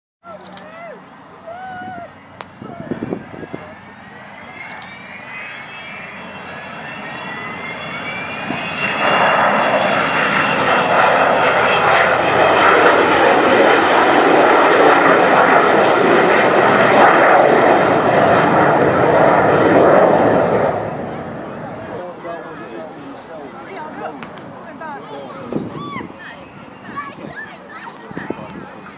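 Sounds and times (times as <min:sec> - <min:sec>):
jet engines whistling: 0:00.2 - 0:28.9
loud jet roar: 0:00.4 - 0:28.9.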